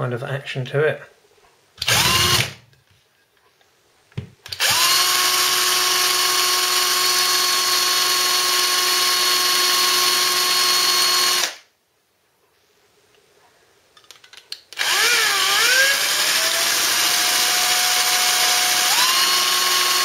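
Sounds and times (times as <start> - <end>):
power drill whine: 1.8 - 2.6, 4.5 - 11.7, 14.8 - 20.0.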